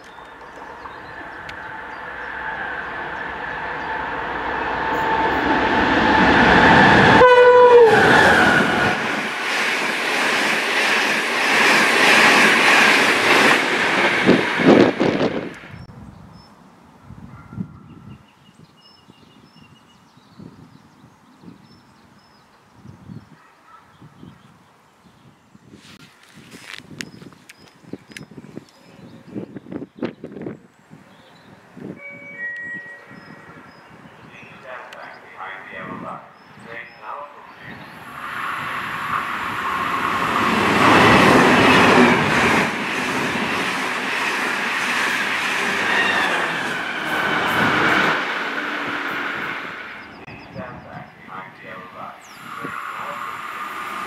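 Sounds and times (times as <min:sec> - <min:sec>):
rush of passing train: 0:00.0 - 0:15.9, 0:31.8 - 0:54.0
train horn: 0:01.6 - 0:09.1, 0:31.9 - 0:33.7
two-note chime: 0:32.0 - 0:33.6
distant echoing announcement voice: 0:32.8 - 0:38.0, 0:50.3 - 0:53.5.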